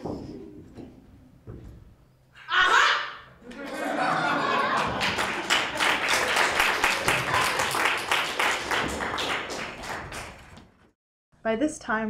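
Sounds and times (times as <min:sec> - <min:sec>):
audience applauding: 0:03.5 - 0:10.8.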